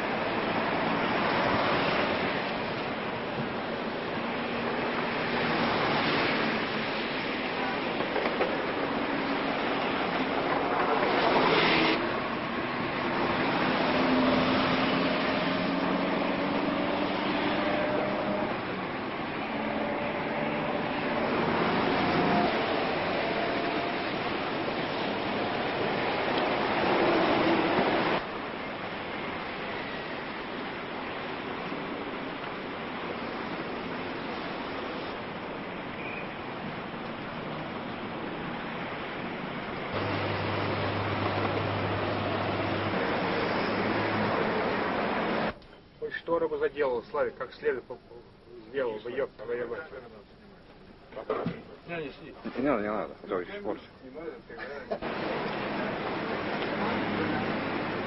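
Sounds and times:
street traffic noise: 0.0s - 58.0s.

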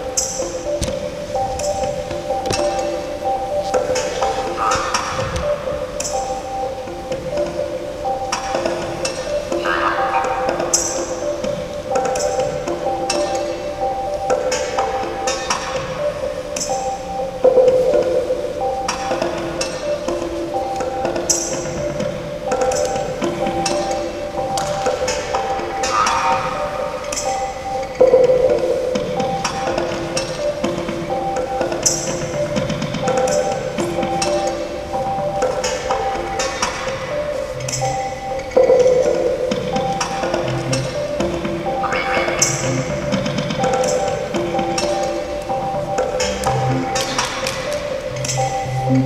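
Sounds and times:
music of sustained tones: 0.0s - 49.0s.

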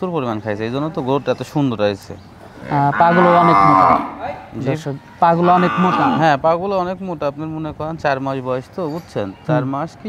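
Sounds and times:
cattle mooing: 2.6s - 4.4s, 5.4s - 6.3s.

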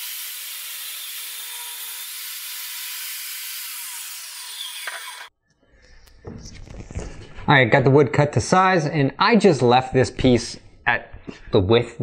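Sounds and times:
table saw cutting plywood: 0.0s - 5.3s.

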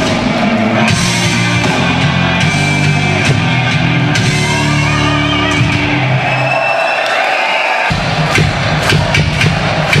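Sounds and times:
large crowd cheering: 0.0s - 10.0s.

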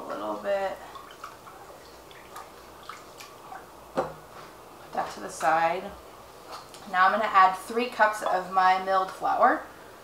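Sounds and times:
faint liquid sloshing: 0.0s - 5.1s.

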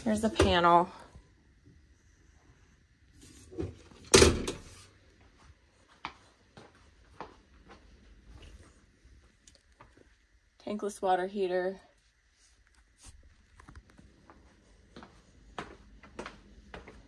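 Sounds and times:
faint footsteps: 4.8s - 10.3s, 12.0s - 17.0s.

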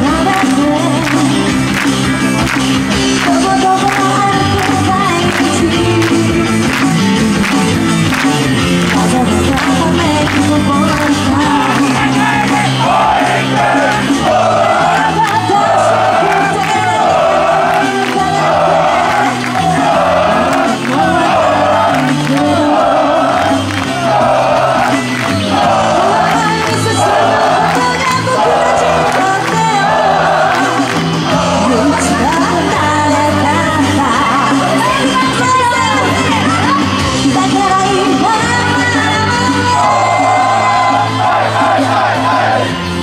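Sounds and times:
woman singing pop song: 0.0s - 2.0s, 3.0s - 7.6s, 8.7s - 13.4s, 14.6s - 23.6s, 25.9s - 41.2s
backing track through speakers: 0.0s - 43.0s
fans shouting: 0.0s - 43.0s.

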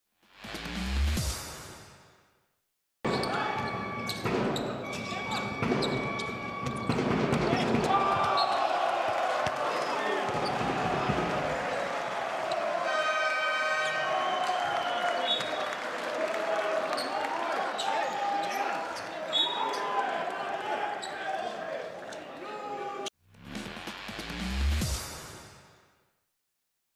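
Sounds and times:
shoe squeaks: 3.1s - 7.6s
basketball bouncing on court: 5.6s - 8.6s, 9.4s - 11.5s.

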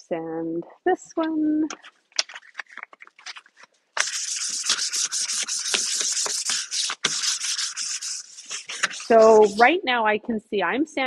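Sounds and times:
sandpaper scratching on wood: 1.8s - 9.7s.

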